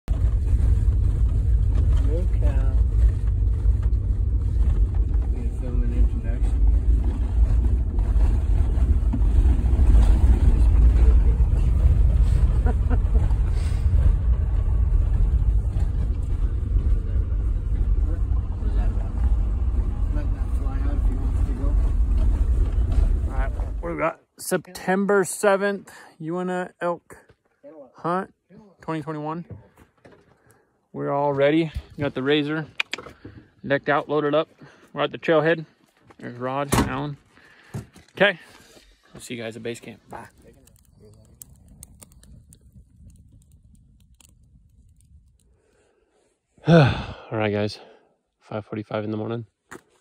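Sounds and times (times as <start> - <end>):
vehicle engine and road rumble: 0.0 - 24.4, 35.3 - 47.8
wind buffeting microphone: 40.4 - 45.4.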